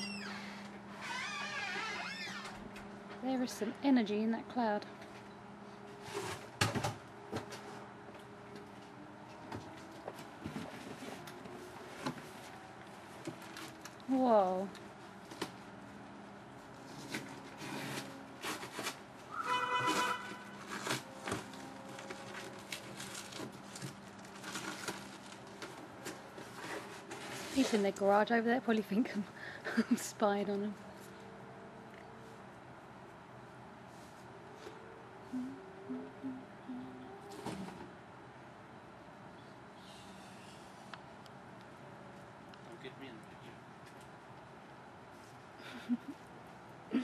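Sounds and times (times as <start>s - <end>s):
faint steady hum: 20.0s - 47.0s.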